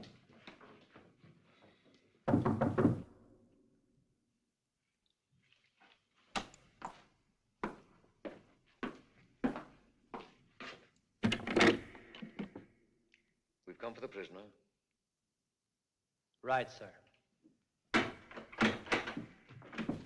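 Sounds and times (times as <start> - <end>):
loud knocks on heavy door: 2.3 - 3.1
footsteps on hard floor: 5.9 - 10.9
loud clatter at cell door: 17.9 - 20.0.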